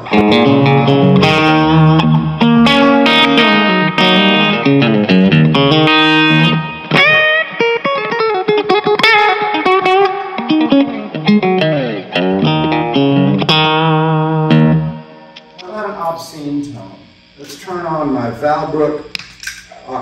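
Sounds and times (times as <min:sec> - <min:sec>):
overdriven electric guitar: 0:00.0 - 0:17.7.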